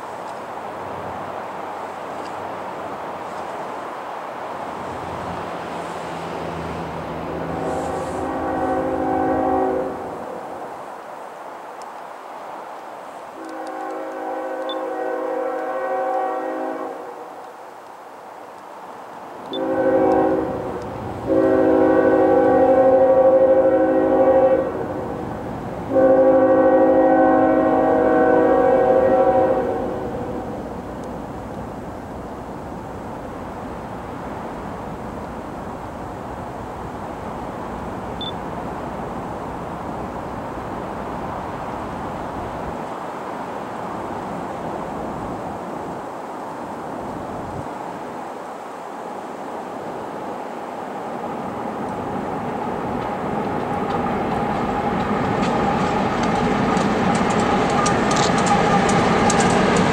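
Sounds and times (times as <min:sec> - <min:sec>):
low train rumble: 0:00.0 - 0:59.9
locomotive air horn blasts: 0:07.3 - 0:10.2, 0:13.4 - 0:17.2, 0:19.5 - 0:25.0, 0:25.9 - 0:30.4.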